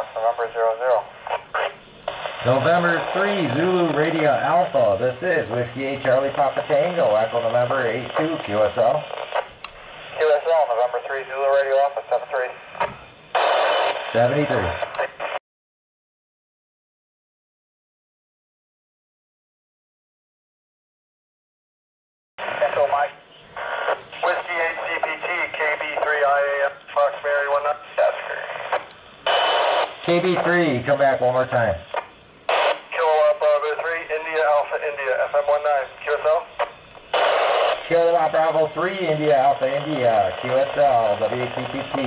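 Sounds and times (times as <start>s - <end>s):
radio receive hiss: 0.0s - 15.4s, 22.4s - 42.0s.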